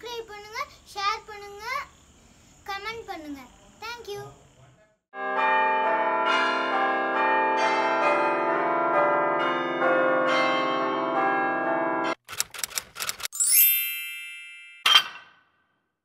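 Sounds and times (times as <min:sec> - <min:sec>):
bells ringing: 0:05.2 - 0:12.2, 0:13.4 - 0:15.0
quick run of clicks: 0:12.2 - 0:13.3.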